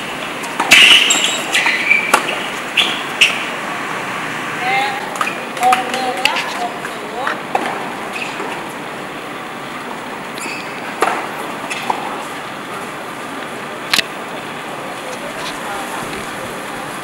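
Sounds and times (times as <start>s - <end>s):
steady background hiss: 0.0s - 17.0s
faint voices: 12.1s - 17.0s.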